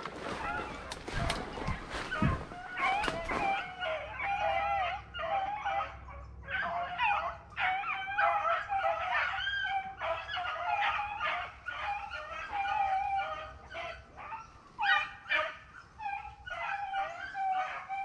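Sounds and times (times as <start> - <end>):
dogs baying and yelping: 0.0 - 18.0.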